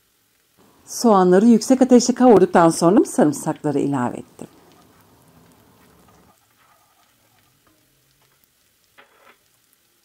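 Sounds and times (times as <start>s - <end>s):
onions sizzling in oil: 0.0s - 10.0s
wooden spoon stirring: 2.4s - 8.6s.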